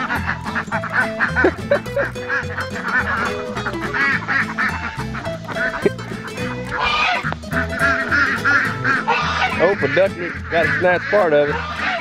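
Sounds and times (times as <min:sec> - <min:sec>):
background music with low beat: 0:00.0 - 0:12.0
chickens and ducks calling: 0:00.0 - 0:12.0.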